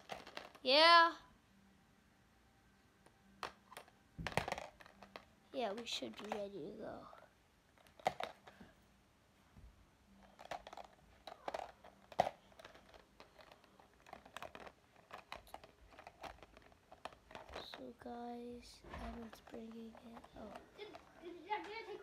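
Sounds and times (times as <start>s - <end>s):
rustling of handled objects: 0.0s - 1.0s, 3.4s - 8.9s, 9.6s - 22.0s.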